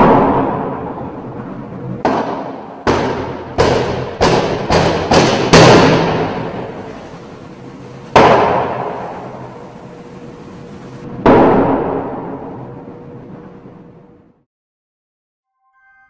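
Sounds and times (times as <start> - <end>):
faint steady hum: 0.0 - 14.4
heavy echoing thuds: 2.0 - 9.9, 11.3 - 12.7.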